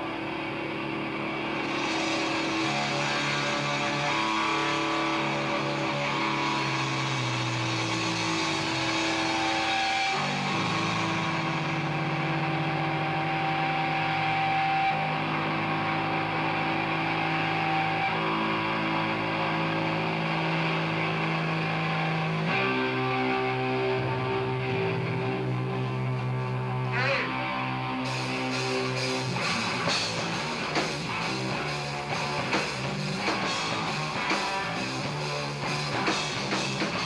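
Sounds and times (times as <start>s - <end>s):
distorted electric guitar chords: 0.0s - 37.0s.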